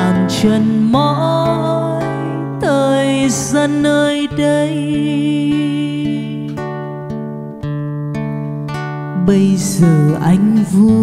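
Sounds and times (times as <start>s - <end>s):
fingerpicked acoustic guitar: 0.0s - 11.0s.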